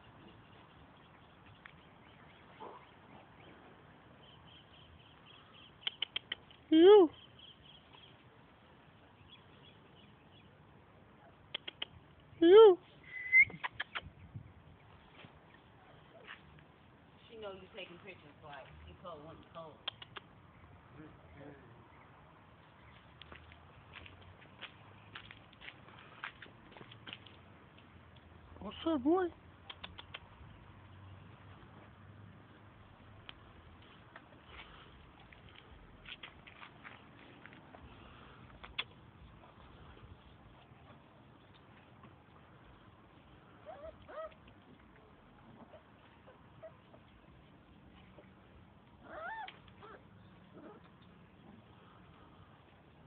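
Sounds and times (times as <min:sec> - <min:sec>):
footsteps on paved path: 0:16.1 - 0:16.7, 0:22.5 - 0:28.0, 0:33.2 - 0:39.1
puppies whining: 0:43.6 - 0:44.4, 0:49.0 - 0:50.0.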